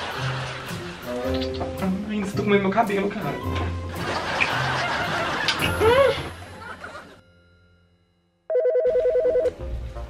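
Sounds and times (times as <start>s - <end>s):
music: 0.0s - 10.0s
telephone ringing: 7.2s - 9.6s.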